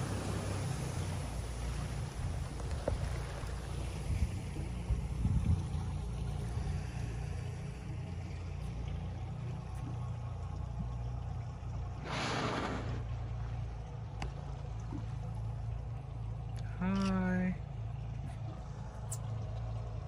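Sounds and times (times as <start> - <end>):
boat engine idling: 0.0 - 20.0.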